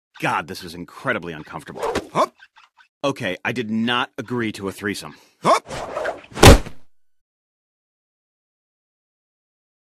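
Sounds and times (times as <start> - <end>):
loud slam: 6.4 - 6.9.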